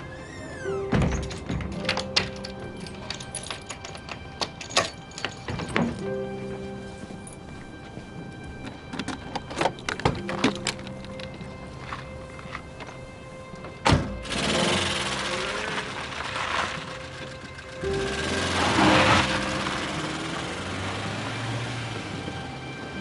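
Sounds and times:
soundtrack music: 0.0 - 23.0
car door slamming: 13.8 - 14.3
car pulling away: 13.9 - 23.0.

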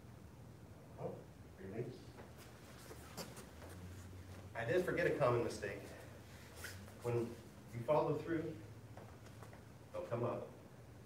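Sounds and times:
low room hum: 0.0 - 11.0
faint soft rustles: 2.0 - 9.8
man talking: 4.5 - 6.1, 7.0 - 8.7, 9.9 - 10.6.

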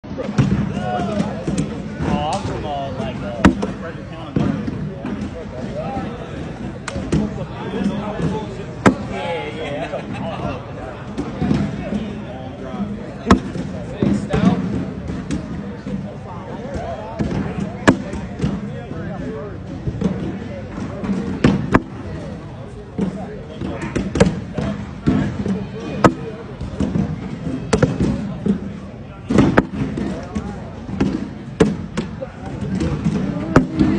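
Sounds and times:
background chatter: 0.0 - 33.9
background voices in a hall: 0.0 - 33.9.

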